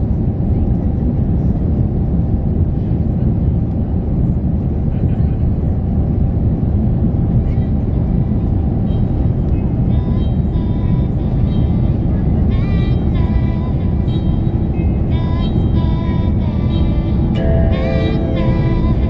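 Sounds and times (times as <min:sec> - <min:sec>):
jet engines rumbling: 0:00.0 - 0:19.0
music melody: 0:12.9 - 0:19.0.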